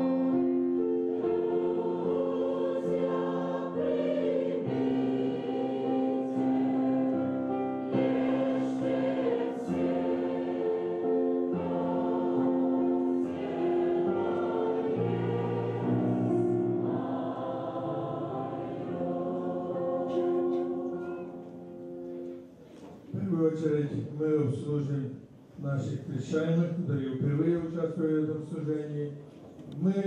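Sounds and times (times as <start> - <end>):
church choir singing a hymn: 0.0 - 22.3.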